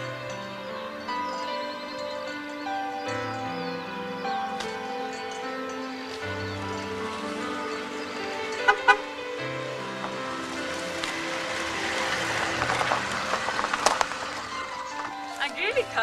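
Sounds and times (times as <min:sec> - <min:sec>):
background music: 0:00.0 - 0:16.0
car driving on dirt track: 0:06.4 - 0:16.0
tyres hissing on ground: 0:09.4 - 0:16.0.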